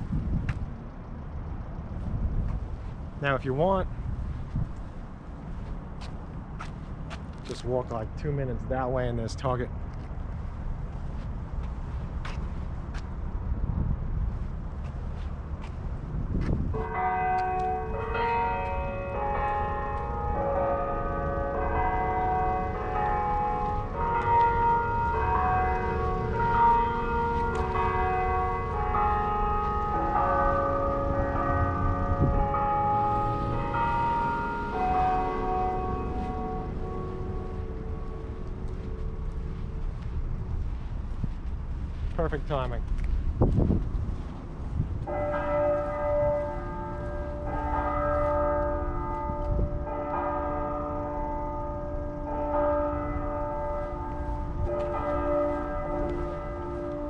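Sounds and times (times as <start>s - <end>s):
clock bells chiming: 16.8s - 40.0s.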